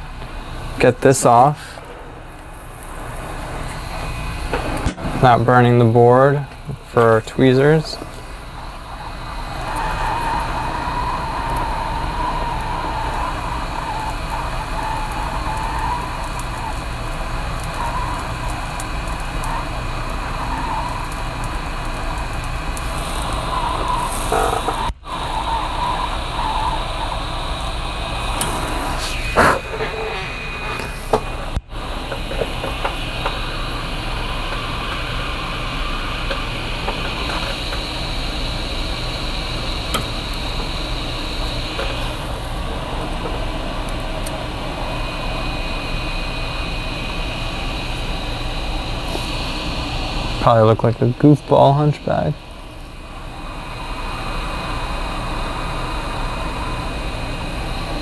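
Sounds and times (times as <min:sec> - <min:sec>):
hot air blower rushing: 0:00.0 - 0:58.0.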